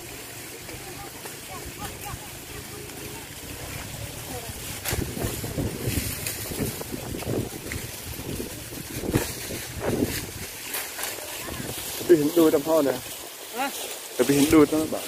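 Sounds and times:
dry sugarcane stalks rustling: 0.0s - 15.0s
footsteps on cane leaves: 2.8s - 15.0s.

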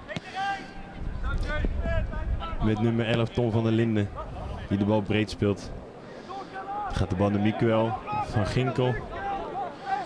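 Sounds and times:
wind rumble on microphone: 1.0s - 2.8s.

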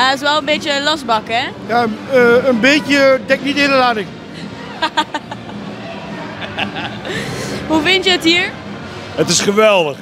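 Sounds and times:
crowd murmur: 1.7s - 9.5s.

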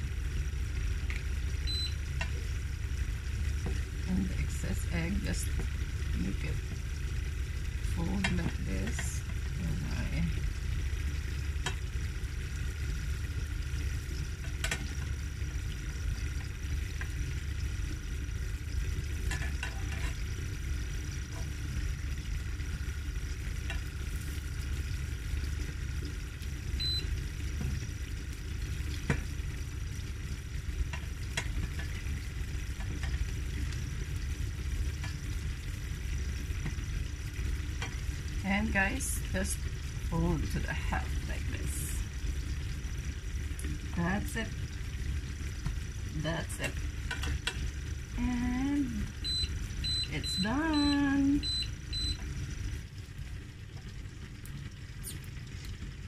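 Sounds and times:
bread sizzling in a pan: 0.0s - 56.0s.

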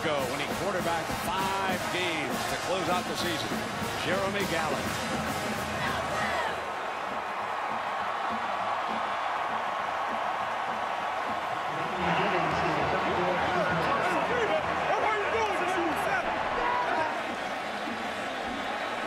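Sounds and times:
stadium crowd cheering: 0.0s - 19.0s
people shouting close: 5.6s - 6.8s, 7.7s - 19.0s.

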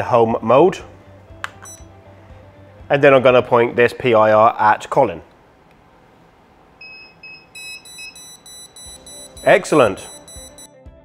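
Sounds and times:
short high-pitched beep: 6.8s - 10.7s.

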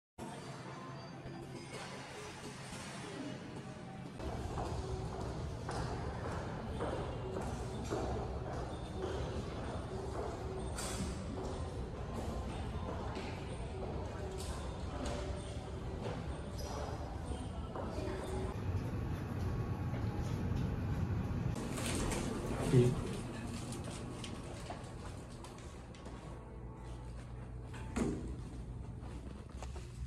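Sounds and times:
footsteps on hard floor: 24.0s - 30.0s.

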